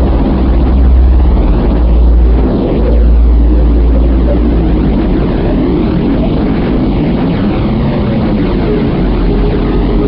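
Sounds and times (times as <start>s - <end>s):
loud low rumbling drone: 0.0s - 10.0s.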